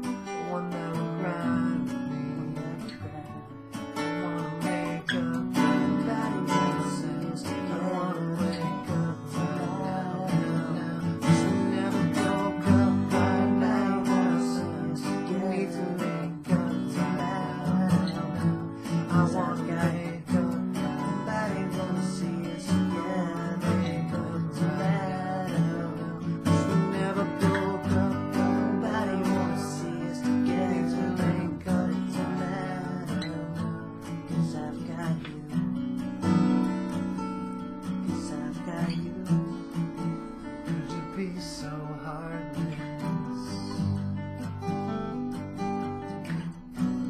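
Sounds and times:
acoustic guitars strumming: 0.0 - 47.0.

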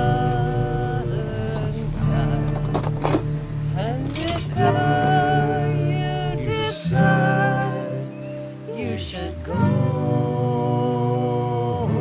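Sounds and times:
acoustic guitar: 0.0 - 12.0
people singing together: 0.0 - 12.0.

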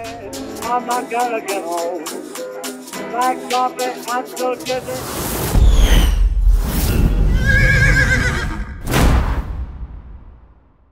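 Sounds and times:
swoosh: 4.7 - 7.4
wavering horse whinny: 7.3 - 8.8.

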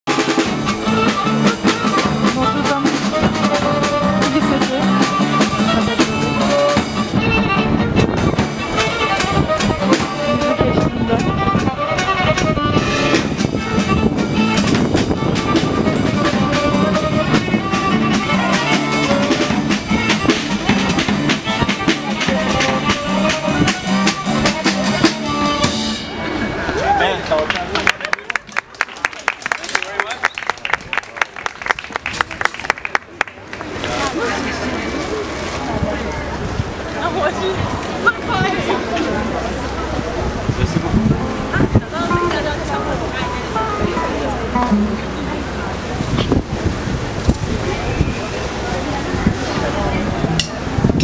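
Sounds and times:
drum kit beat: 0.1 - 26.1, 42.9 - 45.5
violin melody: 0.1 - 26.8, 37.1 - 51.0
guitar: 0.1 - 27.3, 37.6 - 51.0.

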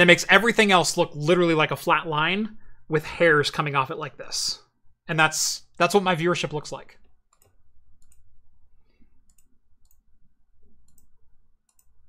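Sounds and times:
low room hum: 6.7 - 12.0
computer mouse clicks: 7.3 - 8.3, 9.2 - 12.0.

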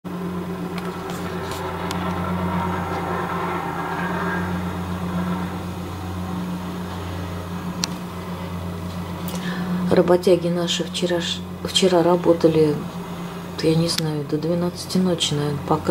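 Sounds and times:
plate compactor engine drone: 0.0 - 15.9.

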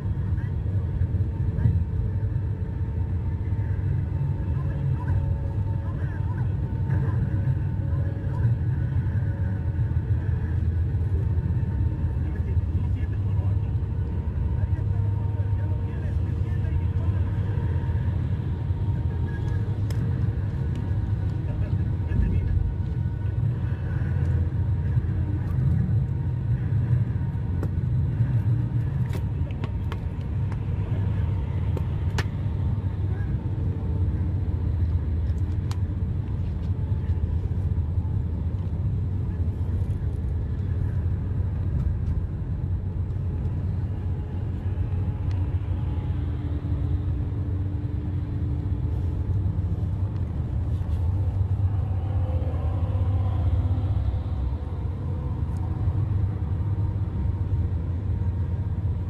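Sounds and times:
vehicle cabin road rumble: 0.0 - 59.0.

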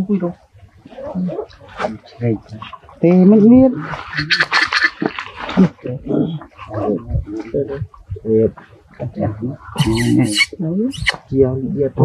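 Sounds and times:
macaque grunts and squeaks: 9.8 - 11.2
macaques calling: 9.8 - 11.2.

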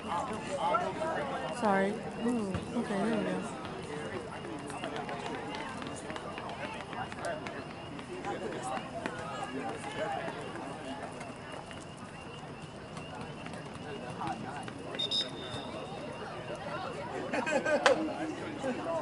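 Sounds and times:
overlapping voices talking: 0.0 - 19.0.

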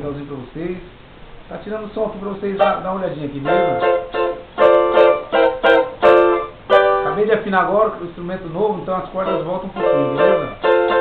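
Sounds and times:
cavaquinho chords strummed: 3.4 - 7.5, 9.1 - 11.0.

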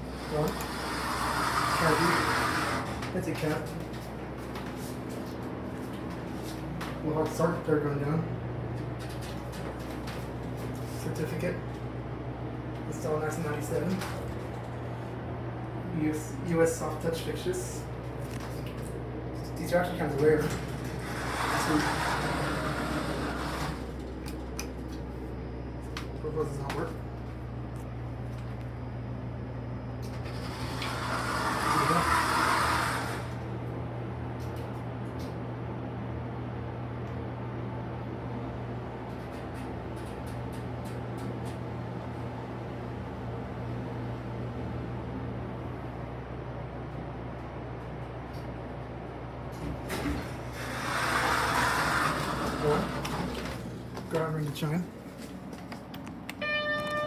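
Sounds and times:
elevator doors sliding: 0.0 - 4.1, 20.0 - 24.5, 30.0 - 33.5, 49.5 - 53.9
elevator low hum: 0.0 - 57.0.

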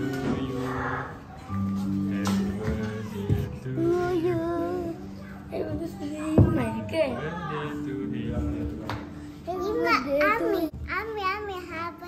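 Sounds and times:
child singing a wavering note: 2.8 - 6.6.

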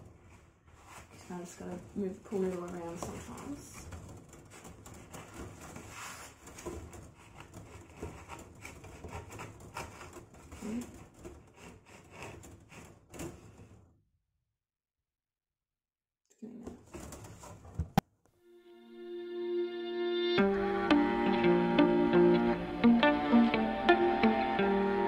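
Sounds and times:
wire scraping through foam: 0.0 - 13.9
music: 18.4 - 25.0.

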